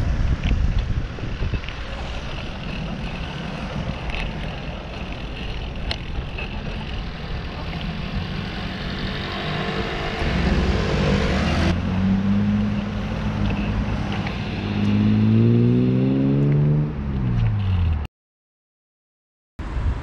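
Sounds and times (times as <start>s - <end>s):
vehicle engine accelerating: 0.0s - 18.1s
wind and road noise: 0.0s - 18.1s, 19.6s - 20.0s.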